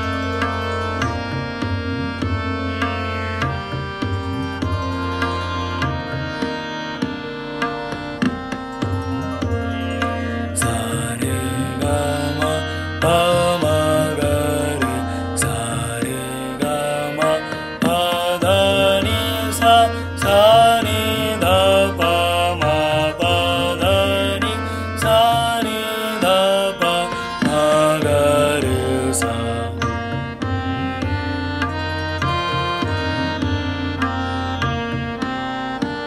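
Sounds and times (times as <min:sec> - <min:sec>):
steady drone with held notes: 0:00.0 - 0:36.0
tabla playing: 0:00.0 - 0:36.0
person singing a scale exercise: 0:10.6 - 0:30.4.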